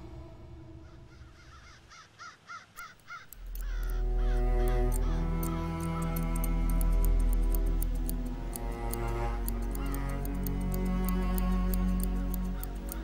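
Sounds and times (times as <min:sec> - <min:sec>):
bird calls: 0:00.7 - 0:06.2
sharp clicks: 0:02.8 - 0:13.0
music with deep low note: 0:03.4 - 0:13.0.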